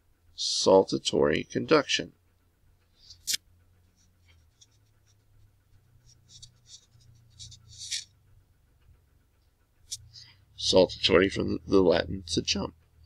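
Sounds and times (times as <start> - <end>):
stylus scratching on touchscreen: 3.1 - 8.2, 9.9 - 12.0.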